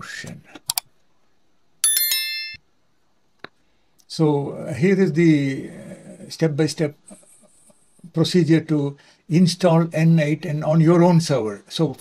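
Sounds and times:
high quick bell ring: 0:01.8 - 0:02.6.

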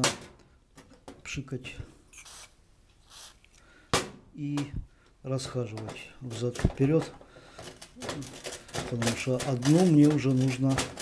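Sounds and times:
aerosol can hissing: 0:02.2 - 0:03.5.

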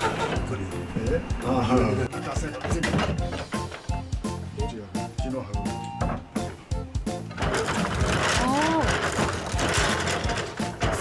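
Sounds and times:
wooden braiding machine clattering: 0:02.3 - 0:04.1, 0:07.2 - 0:11.0.

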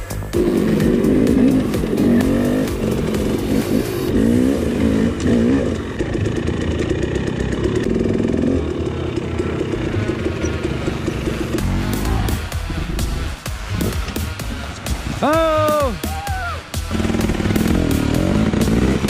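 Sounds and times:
dirt bike engine revving: 0:00.0 - 0:19.0.

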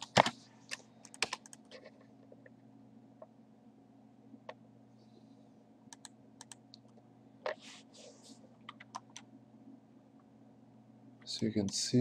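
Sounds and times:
computer keyboard typing: 0:01.0 - 0:01.8, 0:05.9 - 0:06.6, 0:08.6 - 0:09.3.

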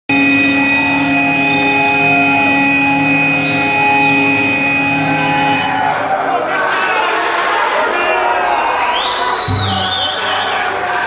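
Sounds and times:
loud sustained drone: 0:00.1 - 0:06.3.

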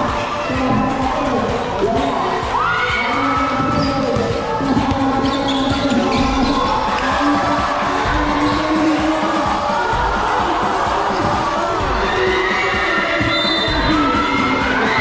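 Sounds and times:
spectators shouting and cheering: 0:00.0 - 0:15.0
sneakers squeaking: 0:02.8 - 0:09.2, 0:10.6 - 0:15.0
basketball bouncing on floor: 0:03.6 - 0:06.7.

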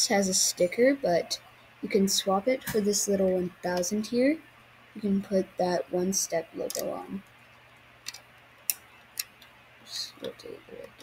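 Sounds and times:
plastic bricks clicking: 0:08.0 - 0:09.3.

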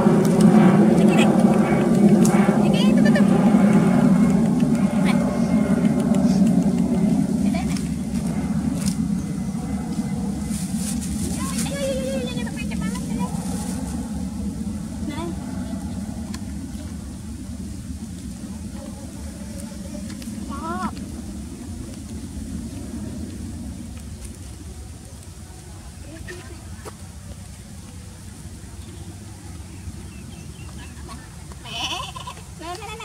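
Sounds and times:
vehicle engine droning: 0:00.0 - 0:31.6.

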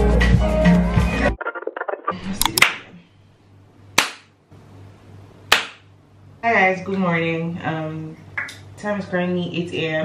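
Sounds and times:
hand claps: 0:04.0 - 0:04.3, 0:05.5 - 0:05.8.

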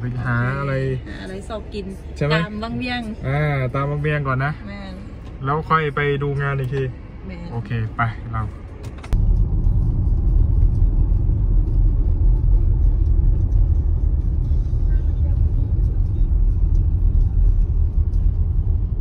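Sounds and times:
car interior road and wind rumble: 0:00.0 - 0:19.0.

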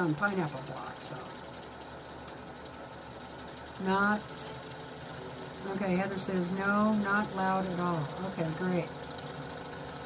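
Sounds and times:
sewing machine running: 0:00.0 - 0:10.0.

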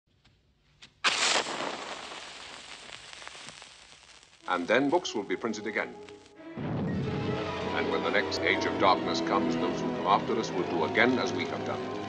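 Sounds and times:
hiss with faint crackles: 0:00.8 - 0:06.4
loud burst of noise: 0:01.1 - 0:04.9.

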